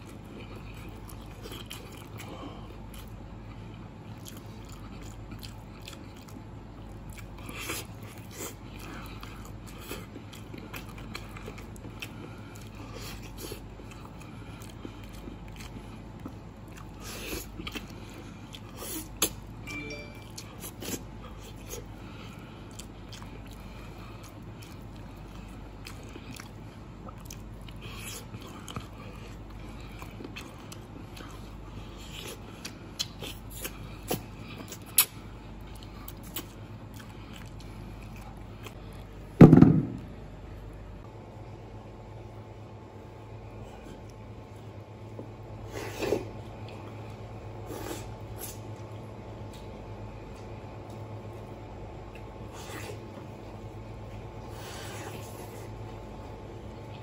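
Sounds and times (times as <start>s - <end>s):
chewing on bone meat: 0.0s - 19.6s, 20.4s - 39.3s, 46.2s - 57.0s
loud thump: 39.4s - 40.0s.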